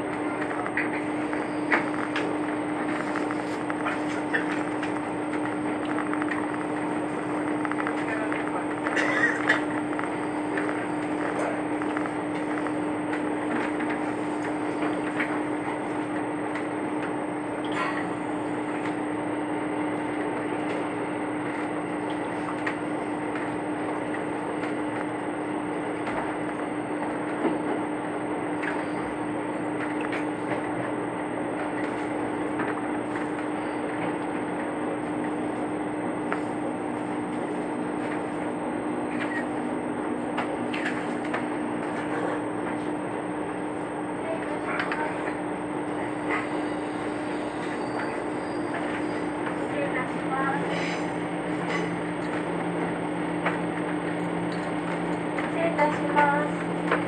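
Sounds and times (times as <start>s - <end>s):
railcar rumbling along the line: 0.0s - 57.0s.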